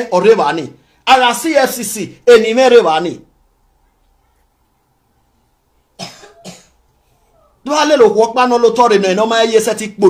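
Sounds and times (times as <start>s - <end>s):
person coughing: 6.0s - 7.4s.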